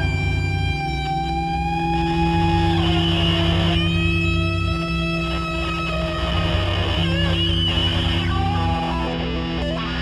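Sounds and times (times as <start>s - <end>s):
guitars playing held notes: 0.0s - 10.0s.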